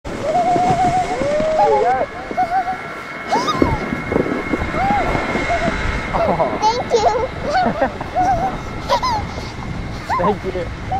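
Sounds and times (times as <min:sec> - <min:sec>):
child giggling and squealing: 0:00.2 - 0:04.0, 0:04.7 - 0:10.9.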